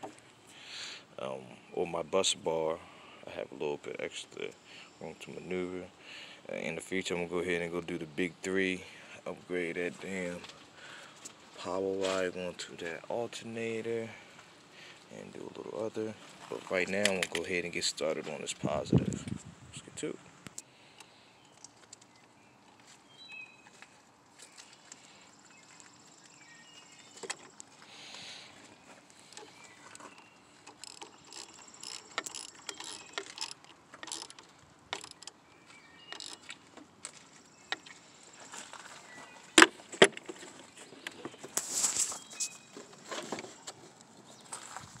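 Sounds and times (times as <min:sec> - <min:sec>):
metal clicks and clinks: 0:30.6 - 0:35.4
ratchet wrench clicking: 0:30.7 - 0:34.4.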